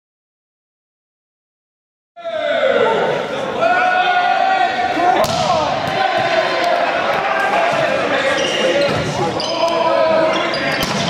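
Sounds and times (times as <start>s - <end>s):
players shouting: 2.2s - 11.0s.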